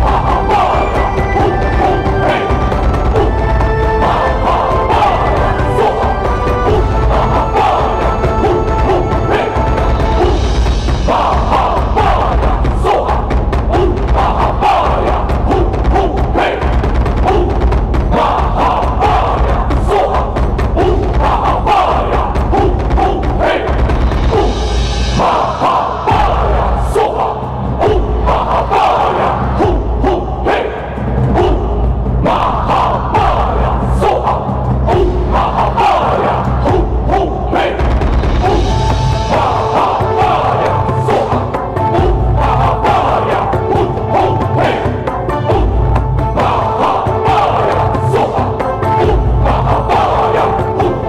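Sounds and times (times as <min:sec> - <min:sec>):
drum and percussion beat: 0:00.0 - 0:51.0
music: 0:00.0 - 0:51.0
voices chanting together: 0:00.0 - 0:51.0.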